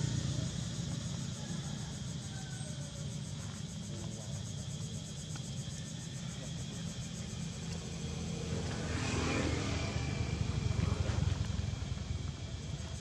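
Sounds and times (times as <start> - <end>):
motor vehicle passing: 7.2 - 13.0.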